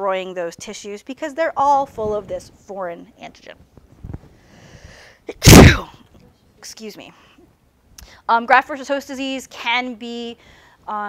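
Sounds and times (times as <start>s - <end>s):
woman sneezing: 5.3s - 6.0s.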